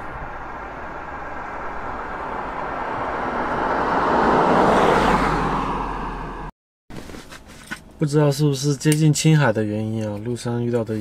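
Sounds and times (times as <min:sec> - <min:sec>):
vehicle road noise: 0:00.0 - 0:08.2.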